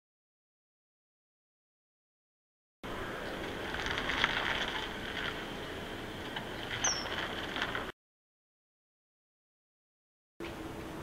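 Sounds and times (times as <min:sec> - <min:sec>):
outdoor background hiss: 0:02.9 - 0:07.9, 0:10.4 - 0:11.0
high-pitched bird chirp: 0:06.8 - 0:07.2.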